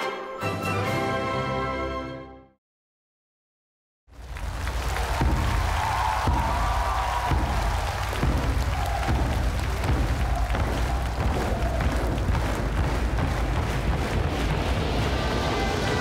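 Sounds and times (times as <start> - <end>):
large drums rolling beat: 4.1 - 16.0.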